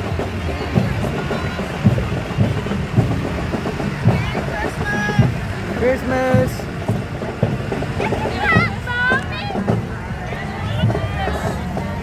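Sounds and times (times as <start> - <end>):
bus engine running: 0.0 - 12.0
low thumping beat: 0.0 - 12.0
voices: 0.0 - 12.0.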